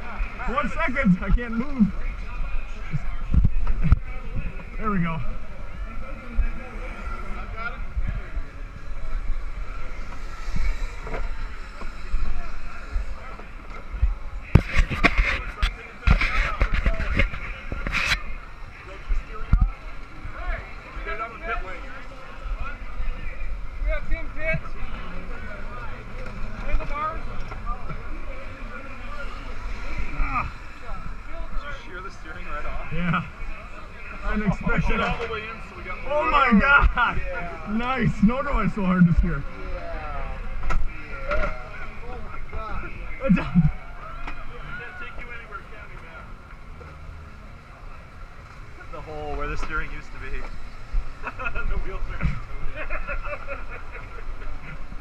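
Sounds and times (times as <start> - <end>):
indistinct voices: 0.0 - 55.0.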